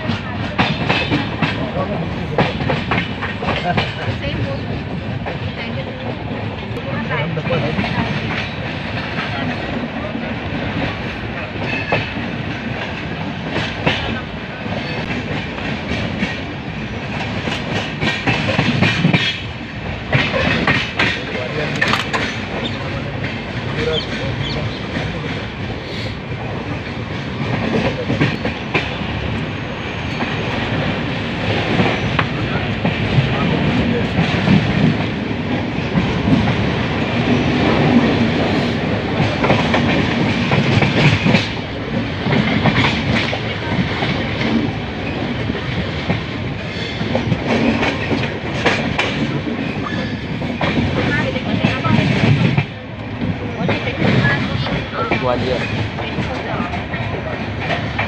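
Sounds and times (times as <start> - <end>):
train rolling rumble: 0.0 - 58.0
wheels clacking over rail joints: 7.6 - 25.7.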